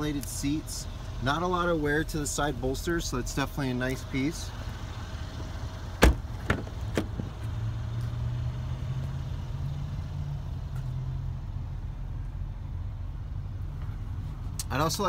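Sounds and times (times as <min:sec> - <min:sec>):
car door latch clicking: 0:06.0 - 0:07.2
door knocks swinging open: 0:06.0 - 0:07.2
steady low rumble: 0:09.4 - 0:15.0.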